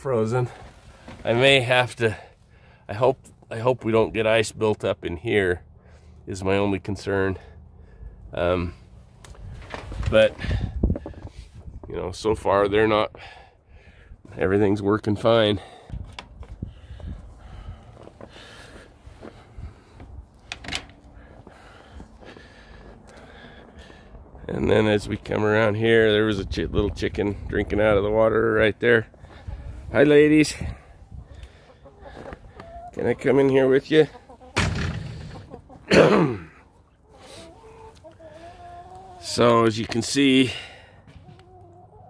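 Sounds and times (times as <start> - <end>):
man clearing his throat: 35.8 - 36.6.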